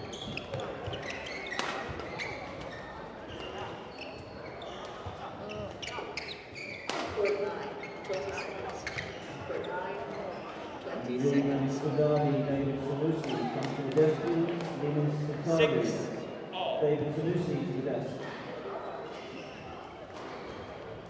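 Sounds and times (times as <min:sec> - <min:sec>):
shoes squeaking on floor: 0:00.0 - 0:10.8, 0:11.8 - 0:12.5, 0:18.8 - 0:21.0
people talking: 0:07.1 - 0:18.2.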